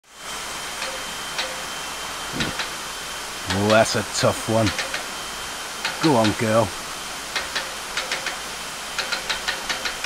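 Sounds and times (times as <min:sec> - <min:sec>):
water rushing: 0:02.0 - 0:09.1.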